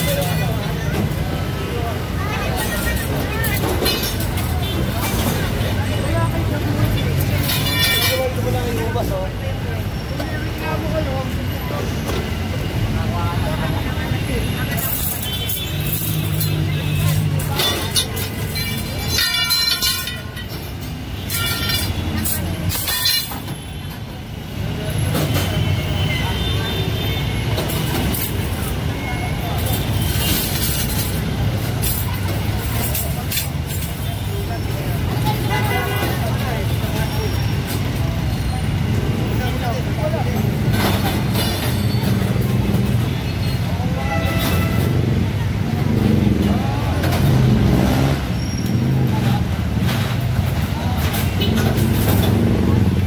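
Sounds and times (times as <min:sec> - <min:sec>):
people talking: 0:00.0 - 0:20.5, 0:21.3 - 0:48.2, 0:48.8 - 0:53.0
vehicle engines running: 0:00.0 - 0:53.0.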